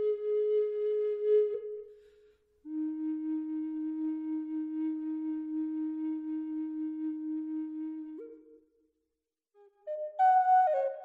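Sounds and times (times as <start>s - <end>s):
flute holding low note: 2.7s - 8.4s.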